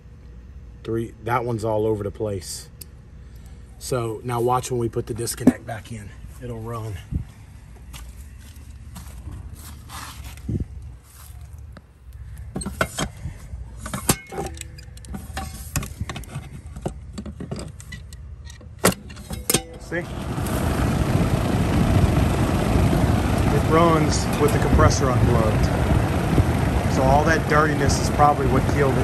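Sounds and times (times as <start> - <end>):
fan motor running: 0.0 - 29.0.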